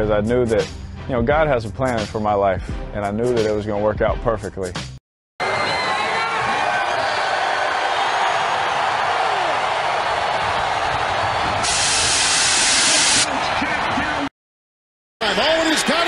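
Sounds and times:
stadium crowd cheering: 0:05.4 - 0:14.3, 0:15.2 - 0:16.0
loud hiss: 0:11.6 - 0:13.3.

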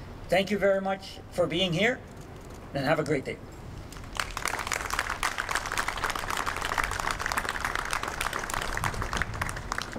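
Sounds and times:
audience applauding: 0:04.1 - 0:09.9.

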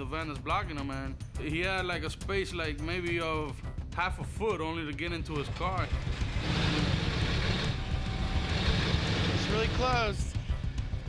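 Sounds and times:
tow truck engine running: 0:06.0 - 0:10.0.

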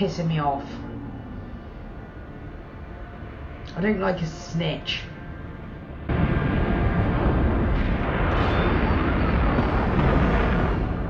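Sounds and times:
deep spaceship rumble: 0:00.0 - 0:11.0.

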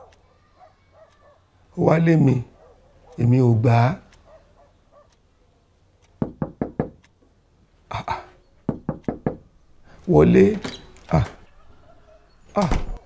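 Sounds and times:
knocking on a door: 0:06.2 - 0:07.0, 0:08.7 - 0:09.4.

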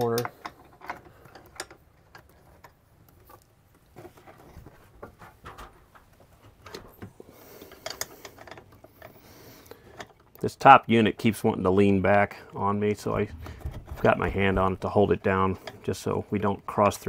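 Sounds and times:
metal panel knocking against frame: 0:13.2 - 0:14.9.

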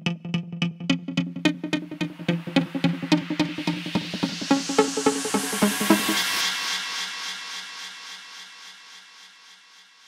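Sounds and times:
electronic beat: 0:00.0 - 0:06.4
hissy synth wash: 0:02.5 - 0:08.2.

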